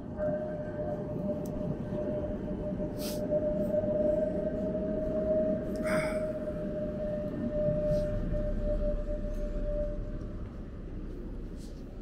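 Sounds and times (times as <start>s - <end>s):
tram whine and rumble on rails: 0.0s - 12.0s.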